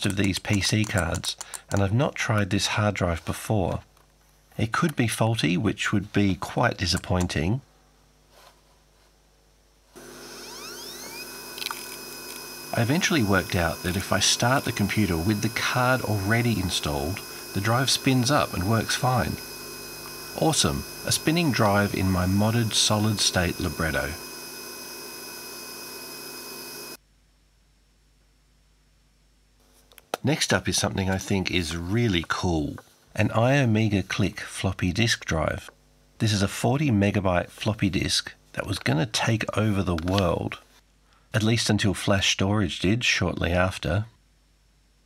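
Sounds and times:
hard drive whine spinning up: 0:10.0 - 0:27.0.

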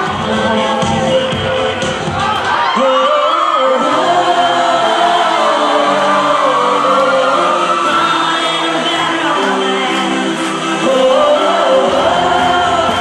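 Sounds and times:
person singing high gliding notes: 0:02.8 - 0:13.0.

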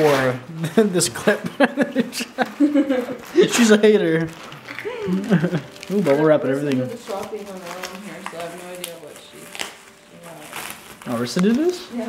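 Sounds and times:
gift wrapping crinkling: 0:00.0 - 0:12.0.

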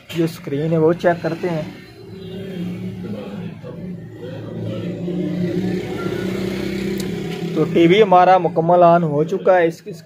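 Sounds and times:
low droning hum: 0:01.8 - 0:07.7.

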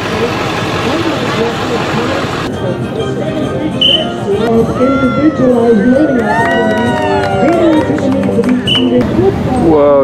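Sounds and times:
vehicle engine running: 0:00.0 - 0:02.5
voices: 0:00.0 - 0:10.0.

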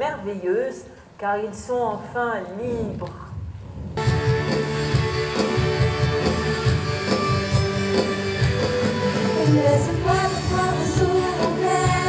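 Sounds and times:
live band playing rock: 0:04.0 - 0:12.0.

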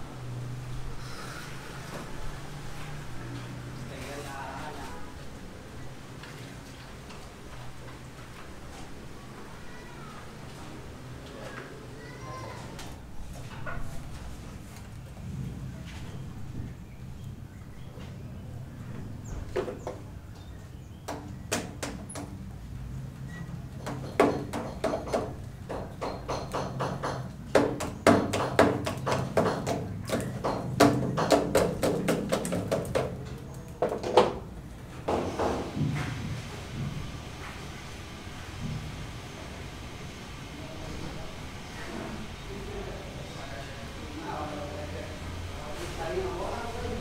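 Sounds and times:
knocks and taps: 0:21.1 - 0:22.3, 0:23.8 - 0:34.4.

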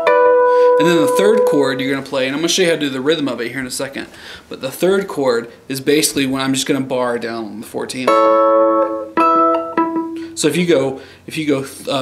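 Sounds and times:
electric guitar chords ringing: 0:00.0 - 0:02.3, 0:08.0 - 0:10.6.

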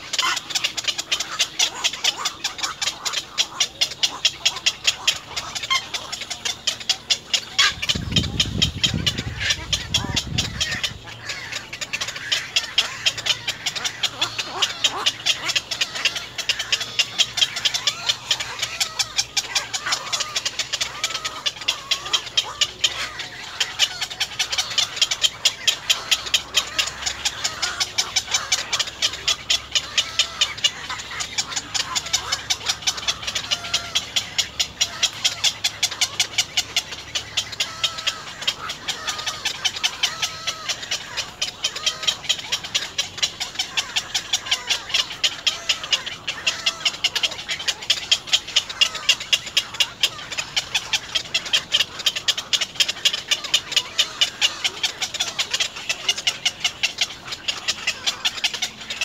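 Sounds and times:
ticking bird chatter: 0:00.0 - 0:59.0.

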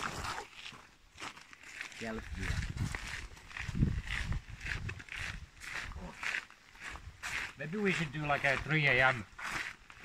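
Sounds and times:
footsteps of people walking: 0:00.0 - 0:10.0.

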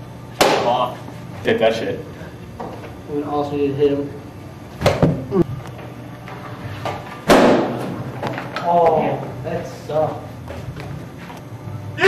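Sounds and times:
bat hitting a ball: 0:00.4 - 0:00.7, 0:07.2 - 0:08.0.

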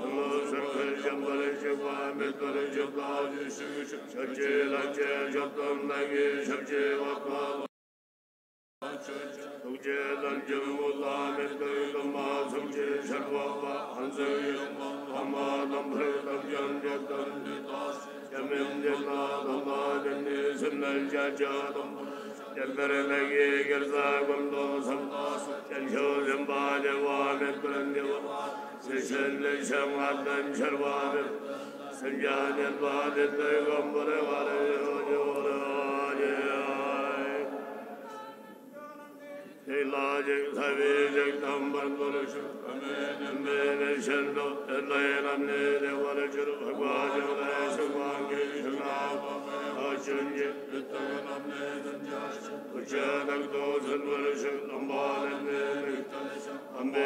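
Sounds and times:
monks chanting in low voices: 0:00.0 - 0:07.7, 0:08.8 - 0:57.0.

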